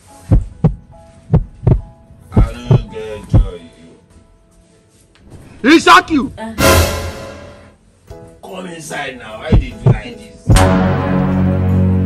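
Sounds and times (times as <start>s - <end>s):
heartbeat thumps: 0.2s - 3.6s, 9.5s - 10.7s.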